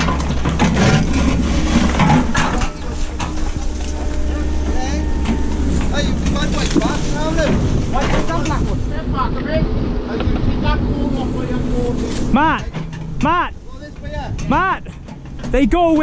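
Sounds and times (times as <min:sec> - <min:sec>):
diesel engine rumble: 0:00.0 - 0:16.0
rubbish crackling: 0:00.0 - 0:16.0.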